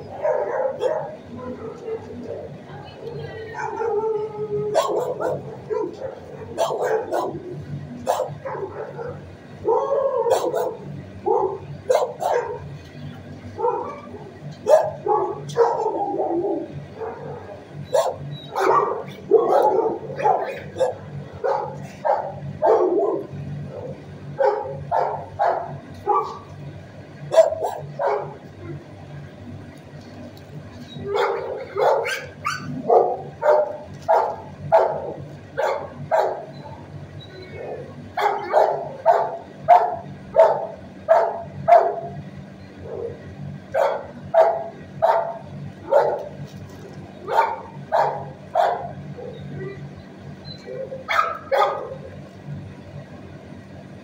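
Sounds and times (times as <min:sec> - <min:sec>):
dogs barking: 0:00.0 - 0:02.6, 0:03.5 - 0:12.7, 0:13.5 - 0:26.6, 0:27.2 - 0:28.9, 0:31.0 - 0:46.5, 0:47.2 - 0:49.9, 0:50.6 - 0:52.3
steady low hum: 0:00.0 - 0:54.0.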